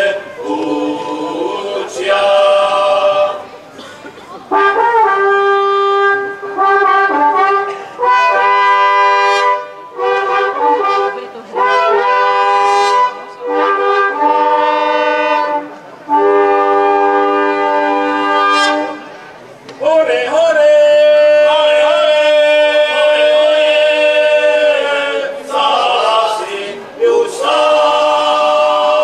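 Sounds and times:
wooden horns blowing: 0:00.0 - 0:29.0.

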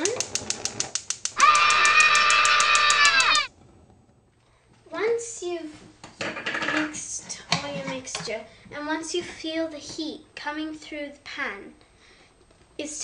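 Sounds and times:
gas stove igniter clicking: 0:00.0 - 0:02.8
child's voice: 0:04.9 - 0:05.8, 0:06.8 - 0:11.8, 0:12.8 - 0:13.0.

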